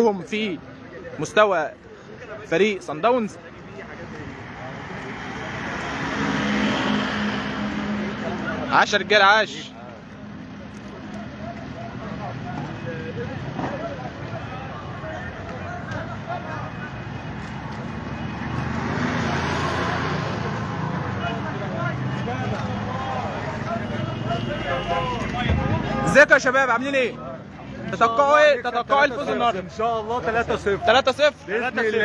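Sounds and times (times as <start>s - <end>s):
crowd sound: 0.0s - 32.0s
traffic: 0.0s - 32.0s
motor vehicle passing: 4.2s - 9.0s, 17.3s - 24.3s.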